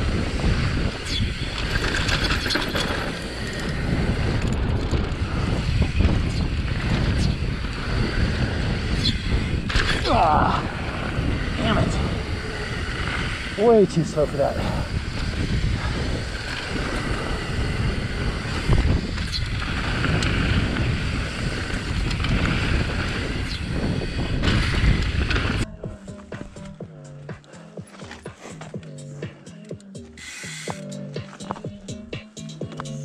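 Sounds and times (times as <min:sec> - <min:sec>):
wind rushing over microphone: 0:00.0 - 0:26.6
tyres on loose dirt: 0:00.0 - 0:31.8
bike knocks and rattles: 0:00.6 - 0:10.4
music with a steady beat: 0:25.7 - 0:33.0.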